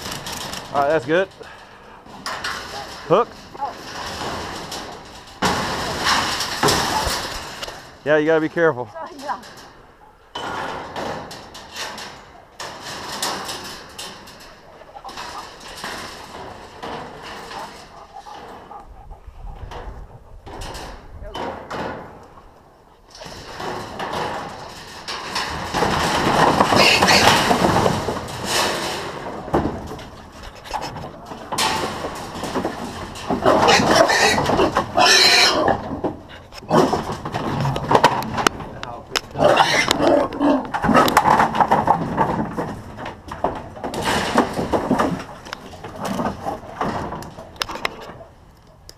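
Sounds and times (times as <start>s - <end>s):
metal cage rattling and clanking: 0.0s - 19.0s, 19.6s - 48.5s.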